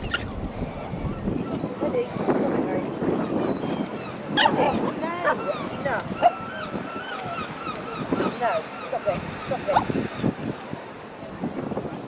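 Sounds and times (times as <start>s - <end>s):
dog whining and yelping: 4.4s - 4.9s.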